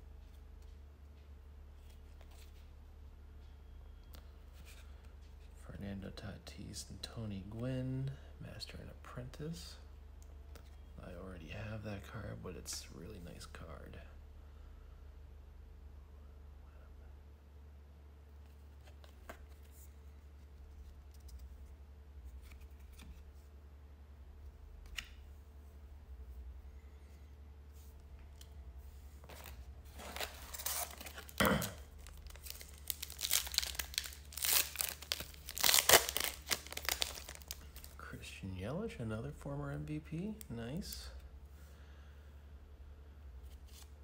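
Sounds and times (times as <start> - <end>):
wrapper tearing and crackling: 30.0 - 38.0.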